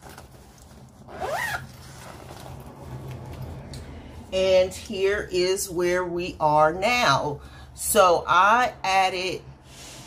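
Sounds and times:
zipper pulled: 1.0 - 3.5.

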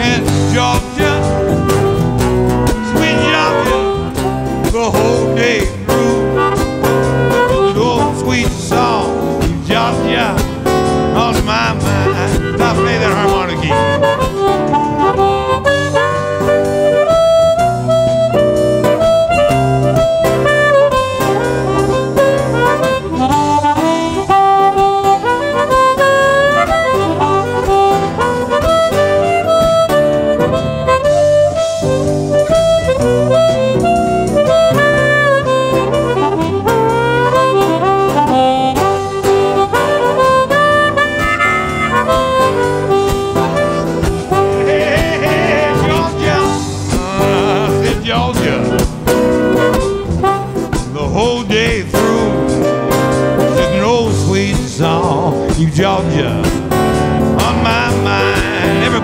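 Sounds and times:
band playing slow blues: 0.0 - 59.0
harmonica solo: 0.0 - 59.0.

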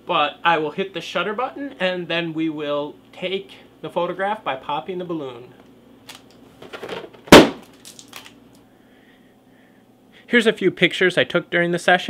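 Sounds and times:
balloon bursting: 7.3 - 7.8.

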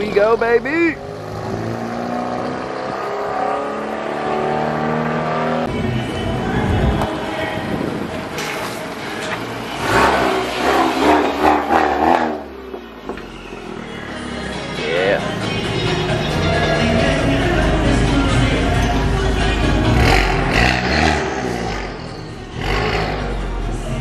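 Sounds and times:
car engine driving slowly: 0.0 - 24.0.

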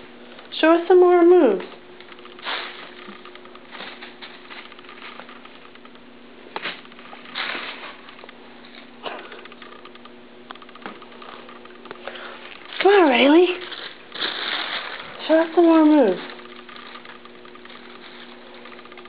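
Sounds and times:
cat scratching and rustling: 2.0 - 5.8, 10.9 - 19.0.

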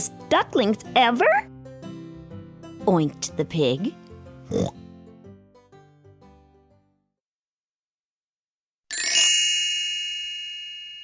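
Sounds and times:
gentle children's music: 0.0 - 7.1
pig-like oink: 4.4 - 4.8.

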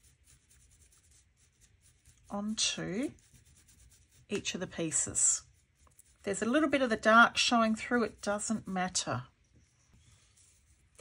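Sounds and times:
paintbrush dabbing paint: 0.0 - 11.0.

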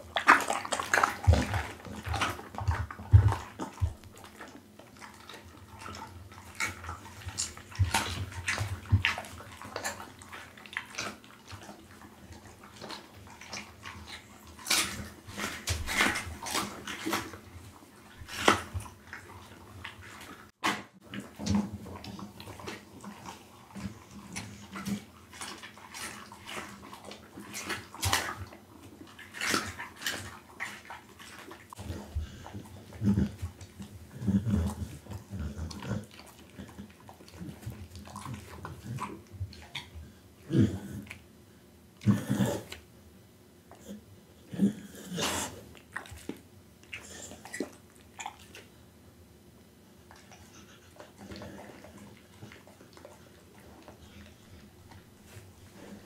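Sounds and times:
dog chewing food: 0.0 - 41.3, 43.6 - 48.8, 49.6 - 56.0.

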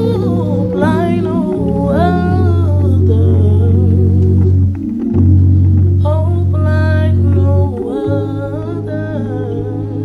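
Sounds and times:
low keyboard chords: 0.0 - 10.0.

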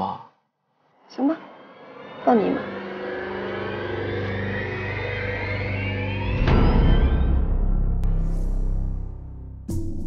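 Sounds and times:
low drone: 1.0 - 9.6
tone rising in pitch: 1.2 - 8.2.

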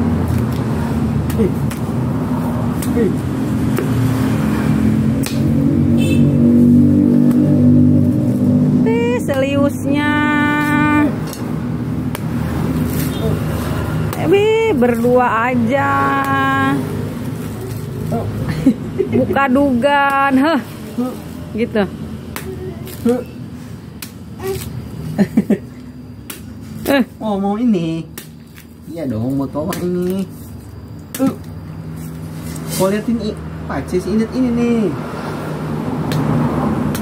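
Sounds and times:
blade chopping coconut husk: 0.1 - 8.6, 9.2 - 9.8, 10.4 - 18.4, 19.4 - 21.2, 23.9 - 24.9, 26.2 - 31.6, 36.0 - 37.0
knife chopping into coconut husk: 2.7 - 4.2, 29.5 - 30.3.

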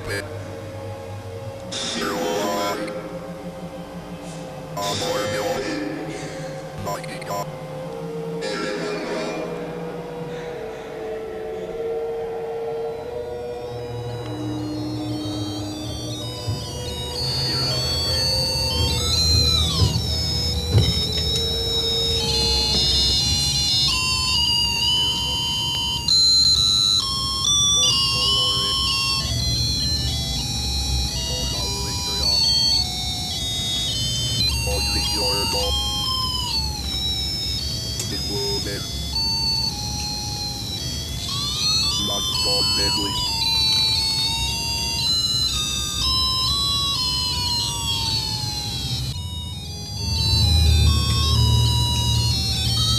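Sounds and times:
low pulsing drone: 0.0 - 52.9
siren-like downward glides: 0.0 - 52.9
high pitched electronic tones: 1.7 - 10.3, 11.7 - 52.9.

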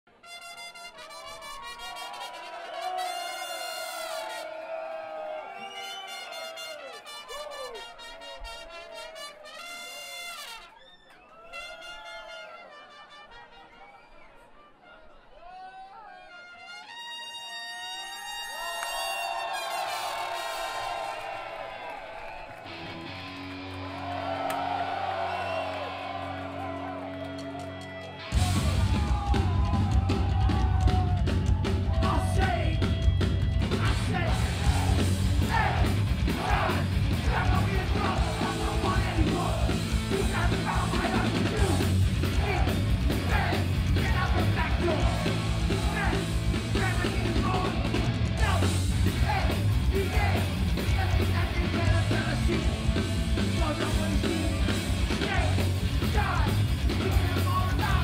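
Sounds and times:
crowd noise: 0.0 - 58.0
trumpet solo melody: 0.1 - 4.5, 5.9 - 10.8, 11.4 - 13.8, 16.2 - 21.1
punk band playing loudly: 26.8 - 58.0.

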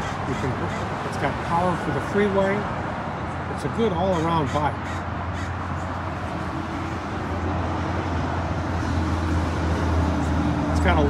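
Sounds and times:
background traffic rumble: 0.0 - 11.0.

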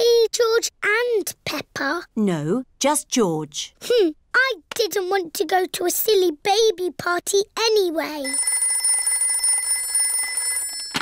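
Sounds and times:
electronic telephone ringing: 8.2 - 11.0.

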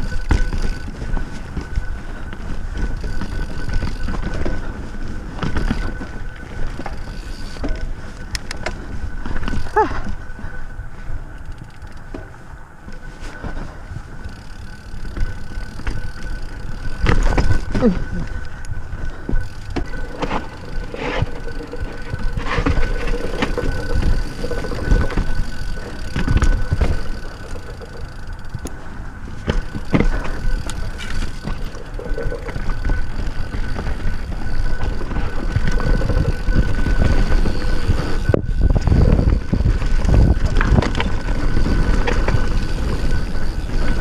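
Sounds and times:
bike knocking and rattling: 0.0 - 44.0
bike tyres over dirt and stones: 0.0 - 44.0
wind rumbling on microphone: 0.0 - 44.0.

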